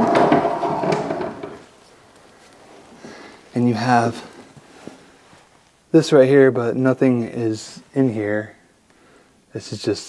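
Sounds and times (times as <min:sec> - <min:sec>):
sharp wooden knocks: 0:00.0 - 0:01.6
wooden door scraping open: 0:00.0 - 0:01.7.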